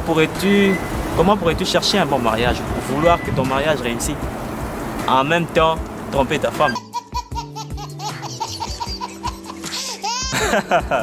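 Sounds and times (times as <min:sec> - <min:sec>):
background music with held notes: 0:00.0 - 0:11.0
baby laughing: 0:06.6 - 0:11.0.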